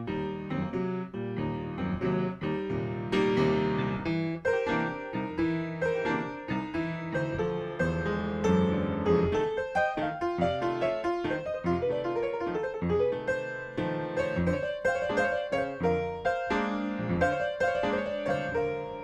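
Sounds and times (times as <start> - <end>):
blues piano playing: 0.0 - 19.0.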